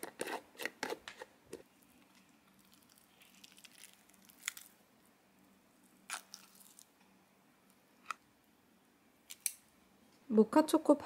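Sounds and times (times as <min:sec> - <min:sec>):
scoop scraping yogurt tub: 0:00.0 - 0:01.6.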